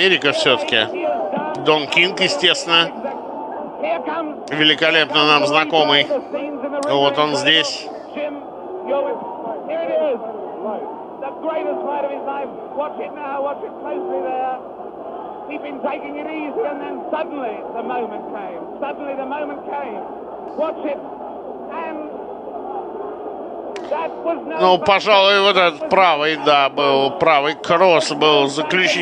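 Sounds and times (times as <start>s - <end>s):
crowd shouting and talking: 0.0s - 29.0s.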